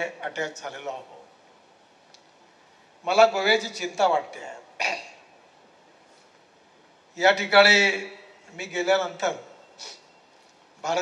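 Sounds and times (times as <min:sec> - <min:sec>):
man speaking into a microphone: 0:00.0 - 0:01.3, 0:03.0 - 0:04.8, 0:07.2 - 0:09.6, 0:10.8 - 0:11.0.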